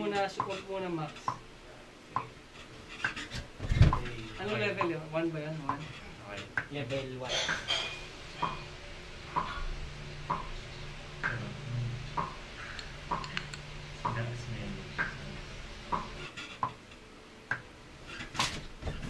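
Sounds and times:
faint low hum: 3.6 - 19.0.

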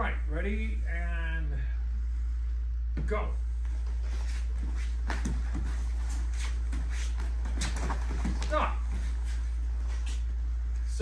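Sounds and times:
steady low hum: 0.0 - 11.0
bare feet thumping on foam mats: 3.7 - 10.2.

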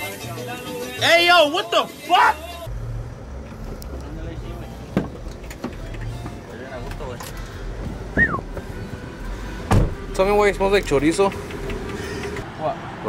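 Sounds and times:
knocks and bumps in a van: 4.9 - 6.4, 9.6 - 10.2
loud thud: 9.6 - 10.1.

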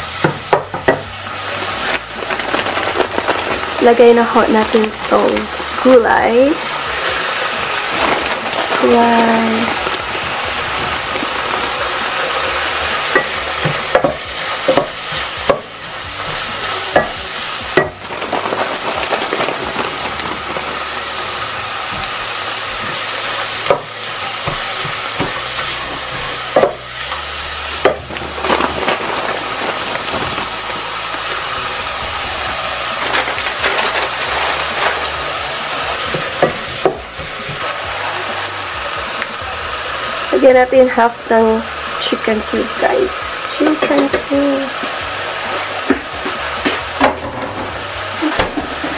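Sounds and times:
food sizzling in hot oil: 0.0 - 48.9
wooden spoon clacking on pot: 13.1 - 18.2.

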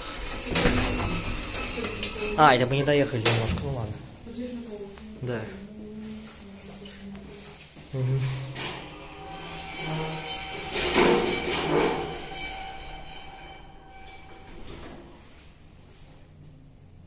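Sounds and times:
elevator doors clattering: 0.0 - 4.6, 8.5 - 15.2.

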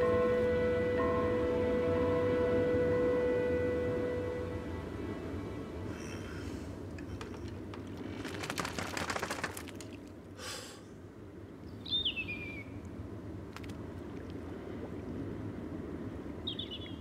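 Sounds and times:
steady low rumble: 0.0 - 8.2, 12.7 - 17.0
clatter of small clicks: 7.0 - 10.0.

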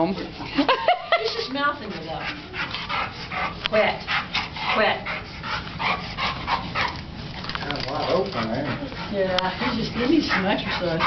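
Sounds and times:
dog breathy sounds: 1.3 - 11.0.

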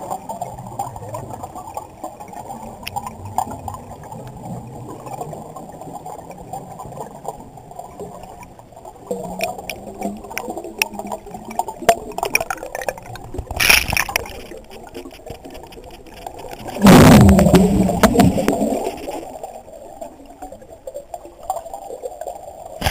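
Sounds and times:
faint crackling clicks: 0.0 - 22.9
exhaled bubbles burst: 16.4 - 20.7.

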